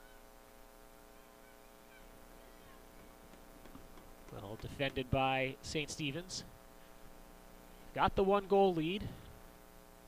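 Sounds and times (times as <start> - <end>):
faint electrical hum: 0.0 - 10.0.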